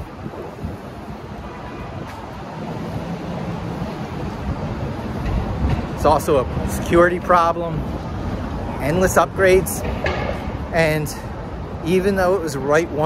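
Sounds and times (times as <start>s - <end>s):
wind on microphone: 0.0s - 7.0s
passing traffic: 0.0s - 13.0s.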